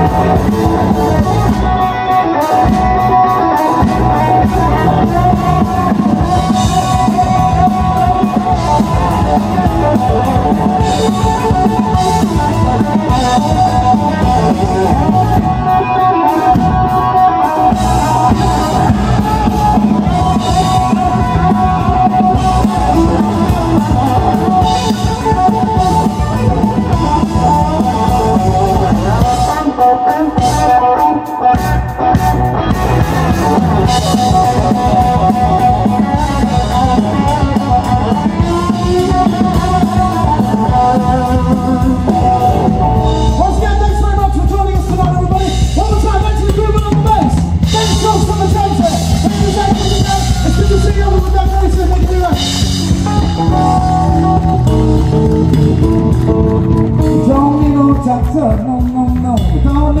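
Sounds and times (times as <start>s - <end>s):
bass guitar: 0.0s - 60.0s
drum kit: 0.0s - 60.0s
electric guitar lead: 0.0s - 60.0s.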